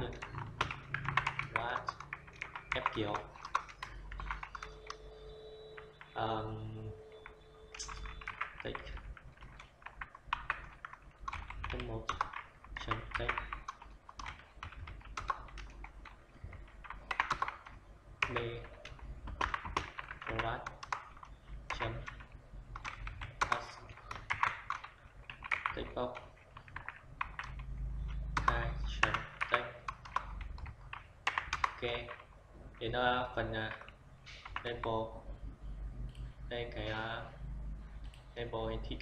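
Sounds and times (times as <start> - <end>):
computer keyboard typing: 0.0 - 34.9.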